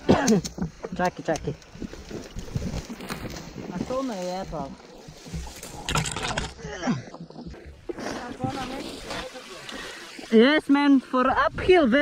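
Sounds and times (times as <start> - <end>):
splashing in muddy water: 0.0 - 10.9
voices talking and calling out: 6.2 - 12.0.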